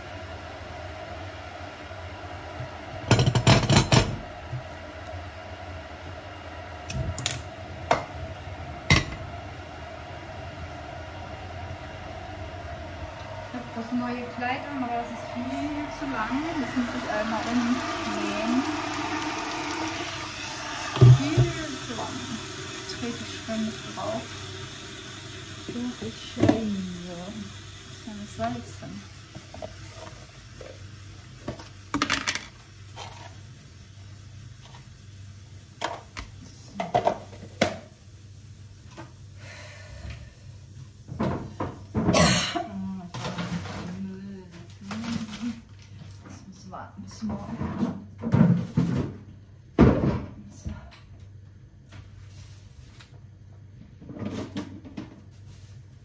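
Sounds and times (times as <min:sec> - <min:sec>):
steady low hum: 0:00.0 - 0:31.5
water pouring from a kettle: 0:13.8 - 0:31.9.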